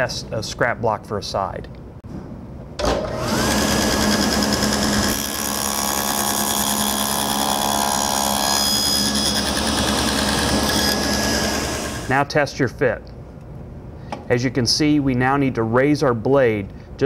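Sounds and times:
table saw running: 0:02.8 - 0:12.1
saw blade cutting wood: 0:03.1 - 0:12.1.

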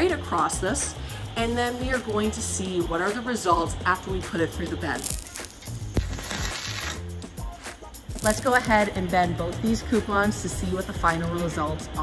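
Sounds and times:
background music: 0:00.0 - 0:12.0
welding arc sparking hiss: 0:00.4 - 0:09.3
sharp arc snap: 0:04.9 - 0:08.9.

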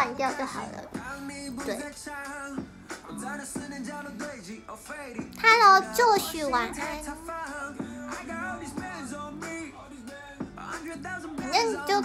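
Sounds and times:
pop song with vocals: 0:00.0 - 0:12.0.

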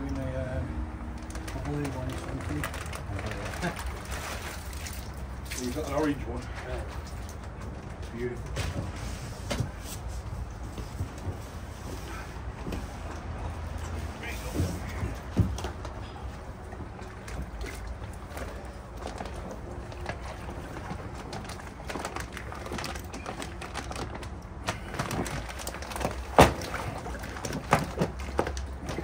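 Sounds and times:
water sloshing: 0:00.0 - 0:29.0
plastic bag crinkling: 0:01.2 - 0:05.2, 0:18.6 - 0:29.0.

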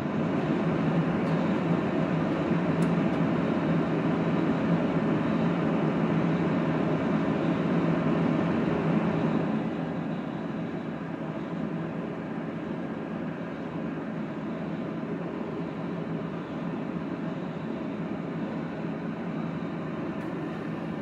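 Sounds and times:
welder cooling fan running: 0:00.0 - 0:21.0.

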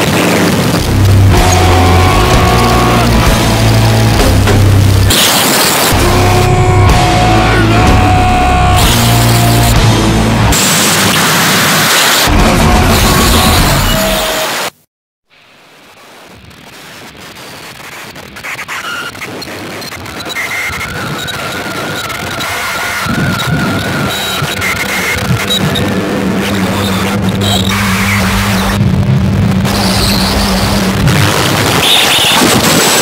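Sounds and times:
loud distorted noise music: 0:00.0 - 0:14.6, 0:16.5 - 0:33.0.

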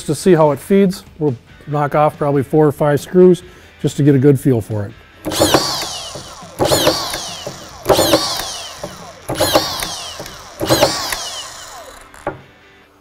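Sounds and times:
screw gun driving screws: 0:05.2 - 0:12.4.

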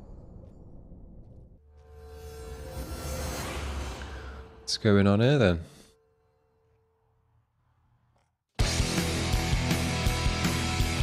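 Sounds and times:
low rumbling drone: 0:00.0 - 0:07.3.

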